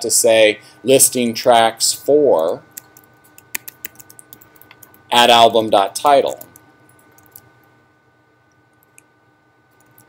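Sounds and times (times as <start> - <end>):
keyboard typing clicks: 2.7 - 5.0, 6.3 - 7.5, 9.7 - 10.0.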